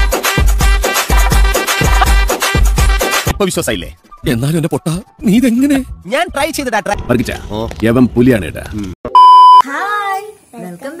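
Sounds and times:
test-pattern beep: 9.1s - 9.6s.

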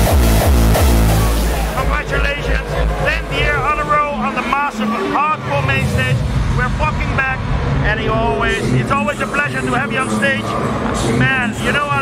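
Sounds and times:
loud low background rumble: 0.0s - 12.0s
man talking: 1.7s - 12.0s.

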